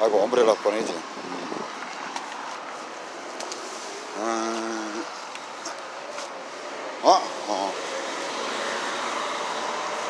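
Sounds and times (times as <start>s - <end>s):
street traffic rushing: 0.0s - 10.0s.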